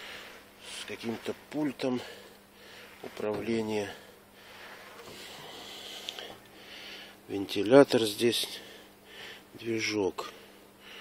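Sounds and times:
breathing into microphone: 0.0s - 0.5s, 2.0s - 3.1s, 3.9s - 7.2s, 8.6s - 9.5s
faint steady hum: 0.0s - 11.0s.

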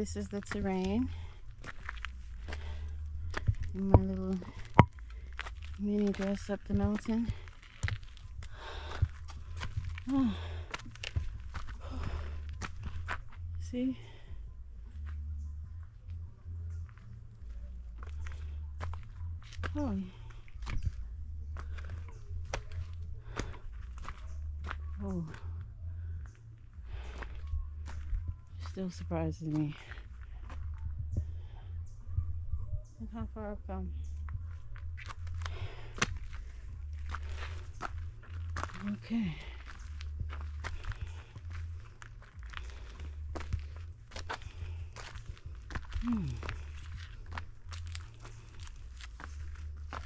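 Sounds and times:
footsteps in sandals on dirt: 0.0s - 31.4s, 33.2s - 50.0s
steady low rumble: 0.0s - 50.0s.

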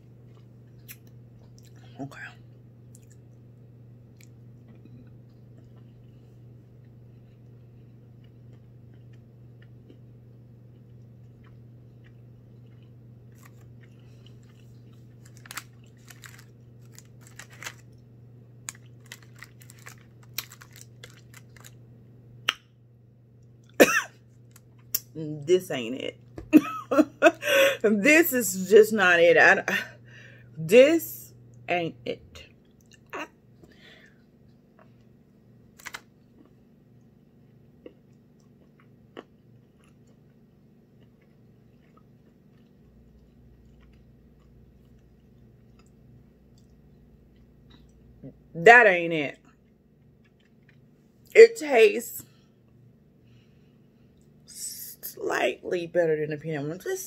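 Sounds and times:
person chewing cookie: 0.0s - 1.9s, 2.8s - 3.4s, 4.1s - 21.8s, 32.5s - 48.5s, 49.5s - 51.3s
low steady hum: 0.0s - 57.0s.

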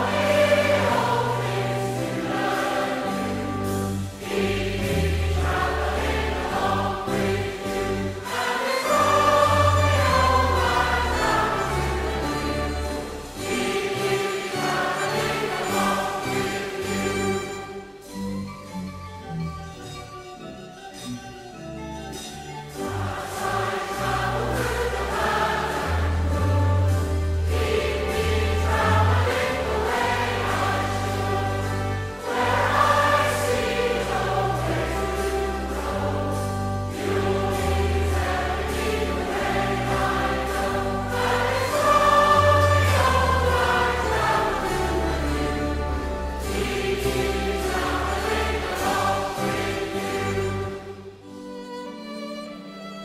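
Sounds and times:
choir singing a hymn: 0.0s - 18.1s, 22.7s - 51.4s
instrumental accompaniment: 0.0s - 53.0s.

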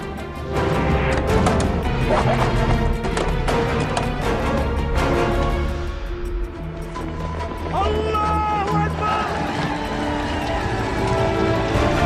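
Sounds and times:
man yelling a battle cry: 7.7s - 9.4s.

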